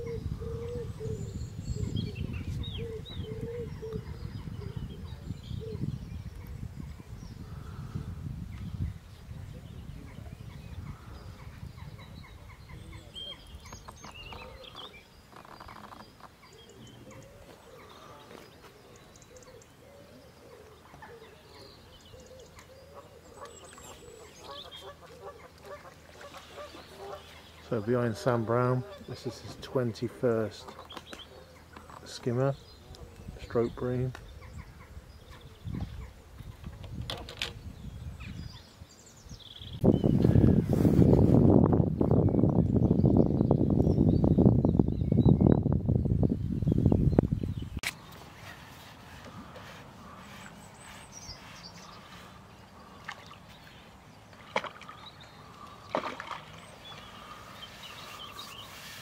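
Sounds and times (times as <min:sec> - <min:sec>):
wind buffeting microphone: 0:00.0 - 0:15.0, 0:32.5 - 0:53.8.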